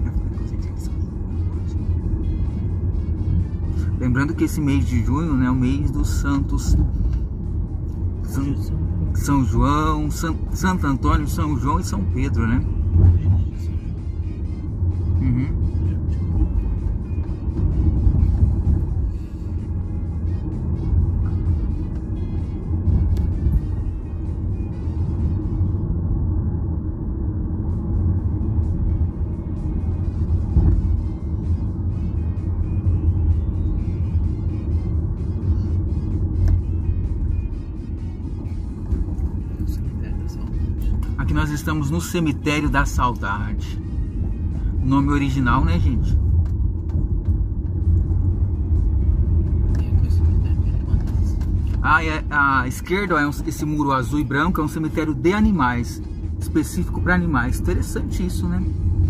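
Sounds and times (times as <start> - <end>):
car cabin road rumble: 0.0 - 59.0.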